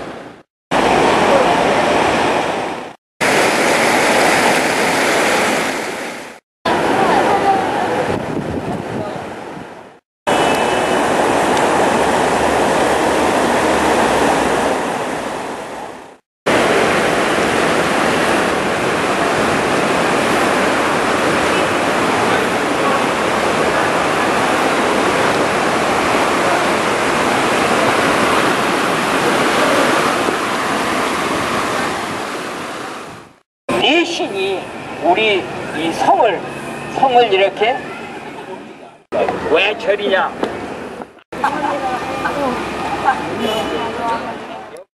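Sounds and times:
stream rushing over rocks: 0:00.0 - 0:38.5, 0:39.1 - 0:44.8.

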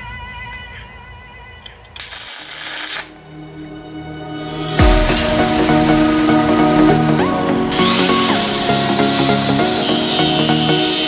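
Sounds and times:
arc welding crackling hiss: 0:02.0 - 0:03.3.

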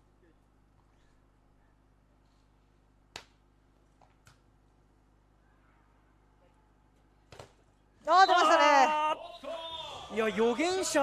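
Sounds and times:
hand slapping volleyball: 0:03.1 - 0:03.4, 0:07.3 - 0:07.7.

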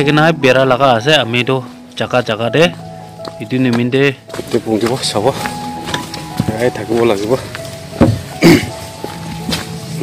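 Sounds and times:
background music with sustained tones: 0:00.0 - 0:10.0
man coughing: 0:08.4 - 0:08.8.

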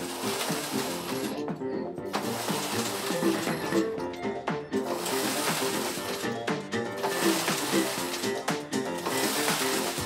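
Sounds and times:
background music: 0:00.0 - 0:10.0
knitting machine carriage rattling: 0:00.0 - 0:10.0.

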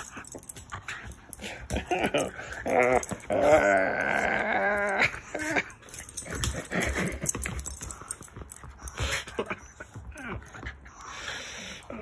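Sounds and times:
dog play noises: 0:00.0 - 0:12.0.

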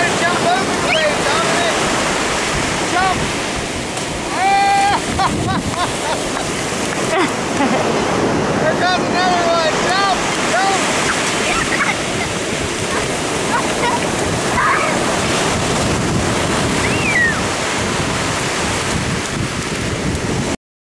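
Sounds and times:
ocean surf breaking: 0:00.0 - 0:20.6
wind buffeting microphone: 0:00.0 - 0:20.6.

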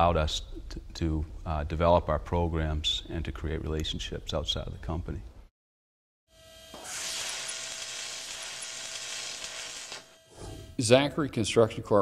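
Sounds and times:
airy shimmering hiss: 0:06.8 - 0:10.8.

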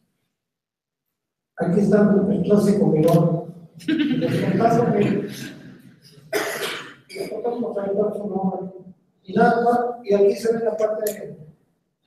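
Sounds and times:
man speaking: 0:01.6 - 0:03.4, 0:04.1 - 0:05.7, 0:07.1 - 0:11.4
sharp cough: 0:06.2 - 0:07.5.

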